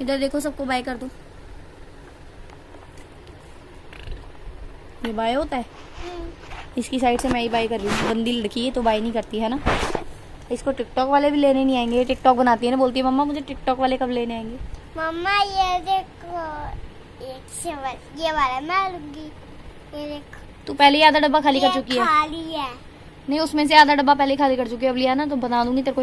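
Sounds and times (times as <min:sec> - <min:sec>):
rustle of handled objects: 0:05.5 - 0:10.3.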